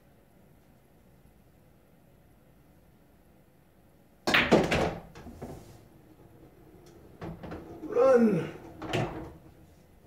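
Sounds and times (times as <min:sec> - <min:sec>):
pool balls clacking: 0:04.2 - 0:10.0
cue striking cue ball: 0:04.3 - 0:05.7
rolling balls knocking: 0:04.3 - 0:09.8.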